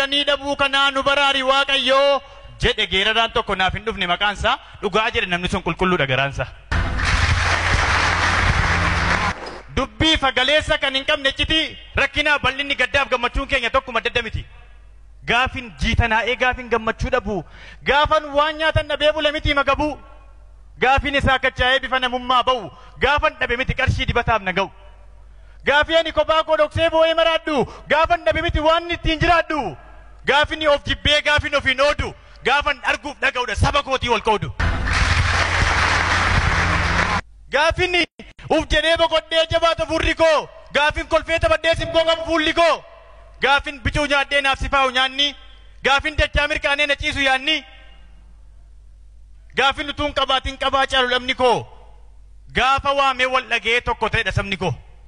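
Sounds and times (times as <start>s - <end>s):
steady low hum: 6.5s - 9.8s, 34.5s - 37.6s
audience applauding: 6.7s - 9.6s, 34.6s - 37.2s.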